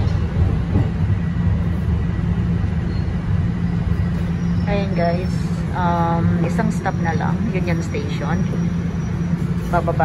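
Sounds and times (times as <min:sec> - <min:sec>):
subway train rumbling: 0:00.0 - 0:10.0
faint high whine: 0:01.1 - 0:10.0.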